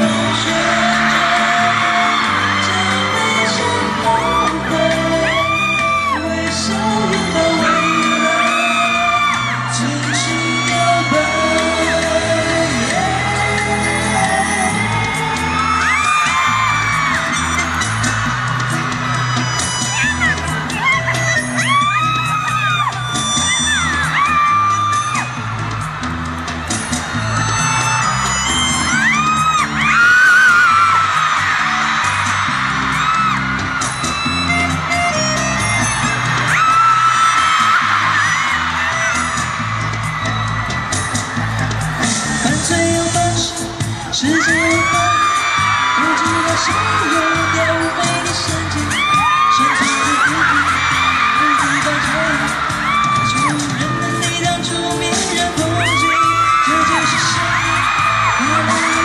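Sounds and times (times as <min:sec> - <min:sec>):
fans screaming and whooping: 0:00.0 - 0:59.0
live pop concert music: 0:00.0 - 0:59.0.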